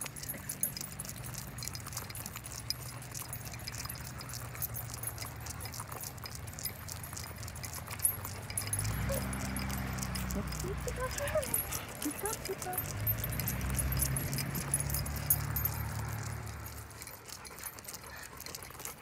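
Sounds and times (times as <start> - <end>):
leash clips and tags jingling: 0.0 - 19.0.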